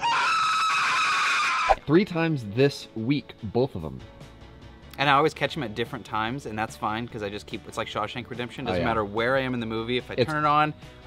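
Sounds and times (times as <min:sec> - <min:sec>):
man screaming: 0:00.0 - 0:01.8.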